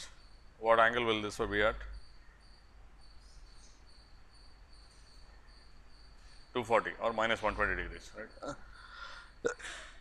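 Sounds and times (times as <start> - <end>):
faint high-pitched chirping: 0.0 - 9.5.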